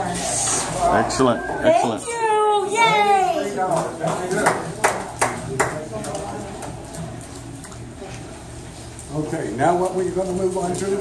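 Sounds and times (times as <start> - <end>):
low room chatter: 0.0 - 11.0
hand claps: 3.7 - 5.8.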